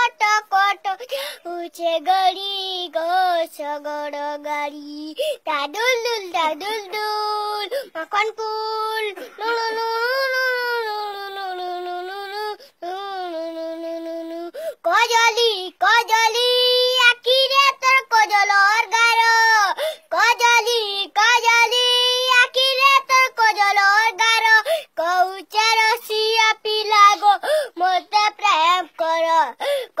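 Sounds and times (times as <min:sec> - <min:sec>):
boy singing unaccompanied: 0:00.0 - 0:30.0.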